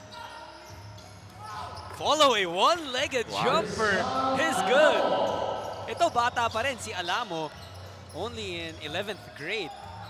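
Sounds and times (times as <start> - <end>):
commentator speaking: 3.0 - 7.0.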